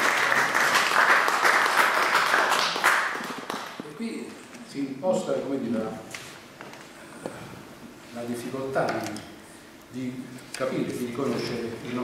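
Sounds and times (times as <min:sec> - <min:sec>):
audience applauding: 0:00.0 - 0:03.8.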